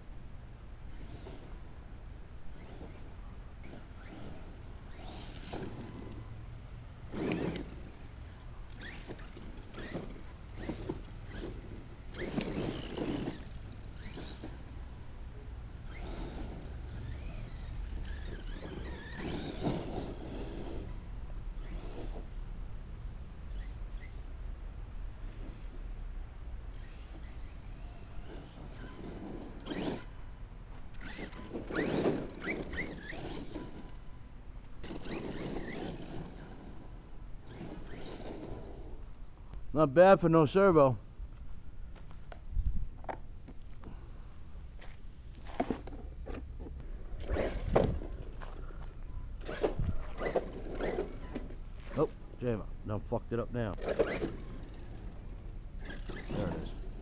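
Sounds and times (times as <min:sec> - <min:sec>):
electric rc truck motor bursts: 0:00.8 - 0:22.4, 0:23.4 - 0:24.4, 0:26.6 - 0:39.1, 0:47.1 - 0:48.3, 0:49.4 - 0:52.7, 0:53.6 - 0:57.0
wind rumble on microphone: 0:49.6 - 0:50.2.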